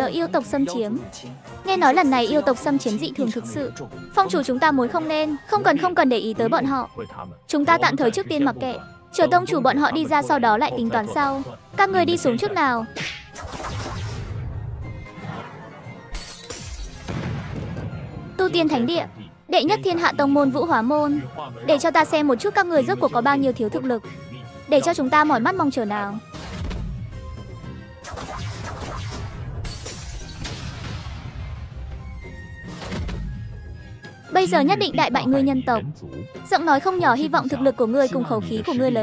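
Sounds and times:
cartoon background music: 0.0s - 39.0s
glass shattering: 16.1s - 17.1s, 29.6s - 30.8s
shattering crash effect: 28.1s - 31.7s.

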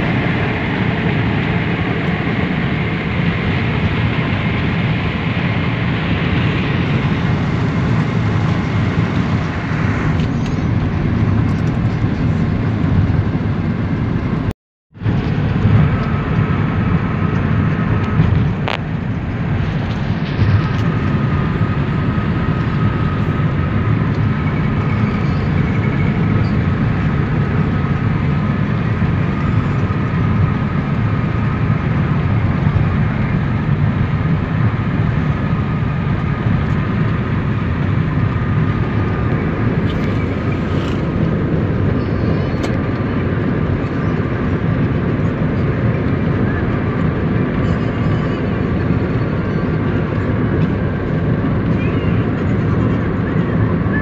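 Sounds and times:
car road and engine noise: 0.0s - 54.0s.

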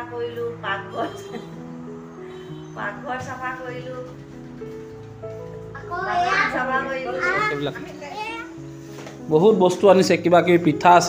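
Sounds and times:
background music with held notes: 0.0s - 11.0s.

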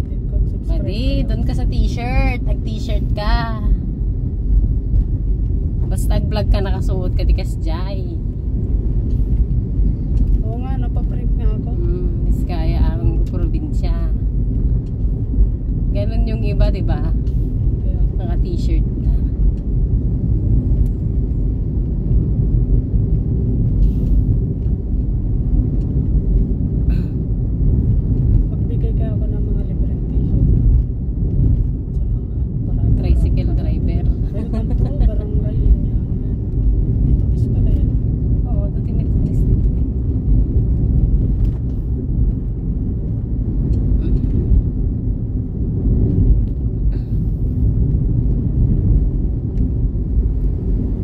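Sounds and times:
car engine rumble: 0.0s - 51.0s.

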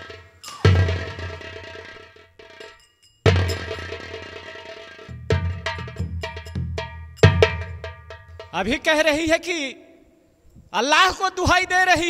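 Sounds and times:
sharp drum strikes: 0.0s - 8.9s.

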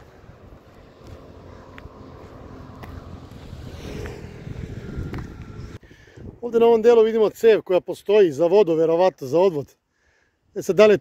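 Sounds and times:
road traffic going by: 0.0s - 5.9s
wind noise on microphone: 0.0s - 6.8s.

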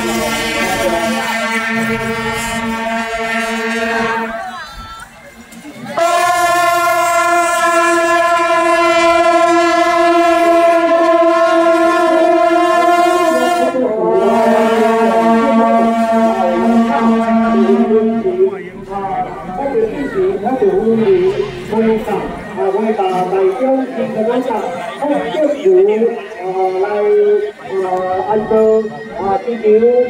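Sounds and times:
brass horns blowing held notes: 0.0s - 4.6s, 5.9s - 30.0s.

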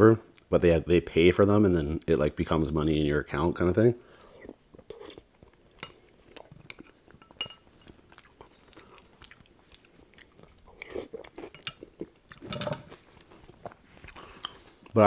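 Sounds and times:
man chewing food: 4.1s - 15.0s.

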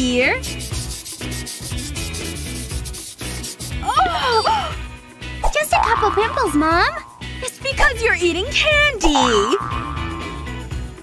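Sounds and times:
background music: 0.0s - 11.0s
fingernails scratching skin: 0.4s - 3.8s.

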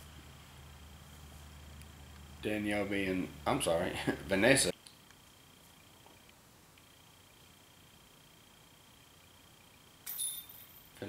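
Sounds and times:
faint high whine: 0.0s - 11.0s
metallic chain jingle: 10.0s - 11.0s.

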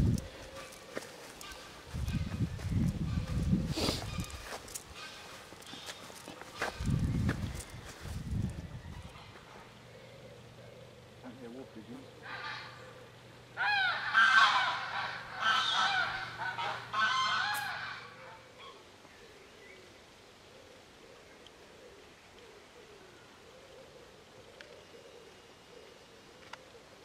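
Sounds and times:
geese honking: 12.2s - 18.4s.

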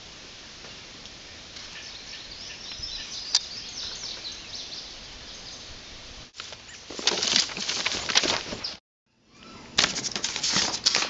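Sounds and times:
outdoor background noise: 0.0s - 11.0s
birds chirping: 1.2s - 9.7s.

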